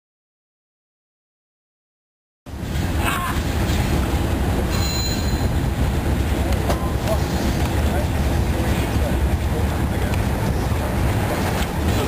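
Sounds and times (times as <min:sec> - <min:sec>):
low outdoor rumble: 0:02.5 - 0:12.0
faint voices: 0:06.0 - 0:12.0.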